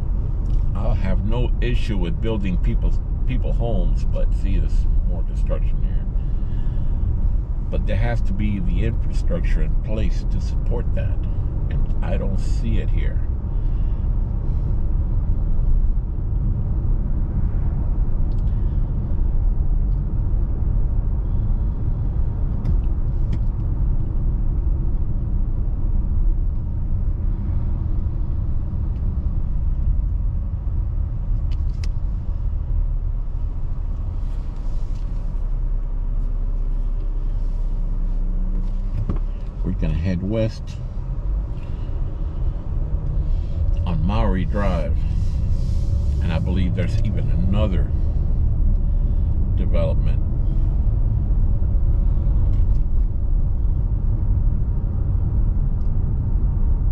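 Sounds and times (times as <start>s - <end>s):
car road and engine rumble: 0.0s - 56.9s.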